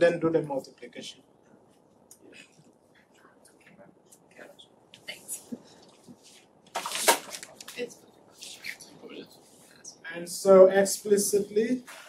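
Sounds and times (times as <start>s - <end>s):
people talking and whispering: 0.0s - 12.0s.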